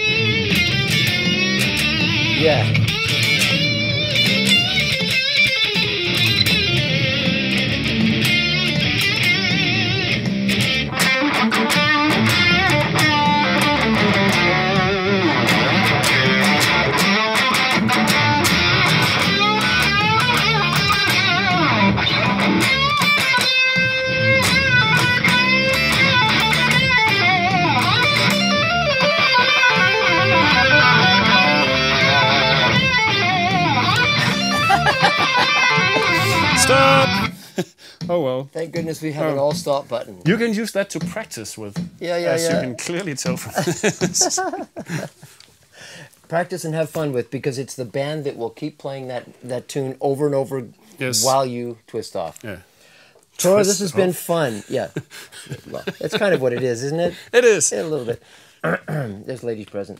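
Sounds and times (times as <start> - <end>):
looped electric guitar phrase: 0.0 - 37.4
live electric guitar: 0.0 - 37.5.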